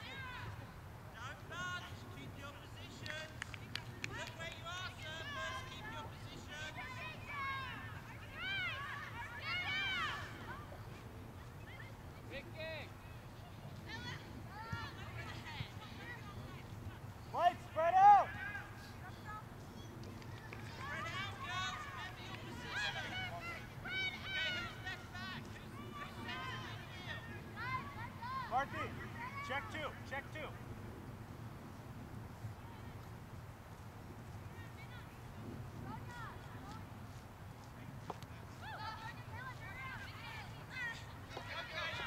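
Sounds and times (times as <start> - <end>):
distant high-pitched shouts: 4.9 - 11.0, 20.6 - 29.8.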